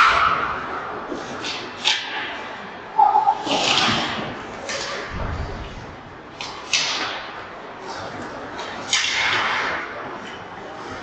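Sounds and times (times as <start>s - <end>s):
dull low thud: 5.1s - 5.9s.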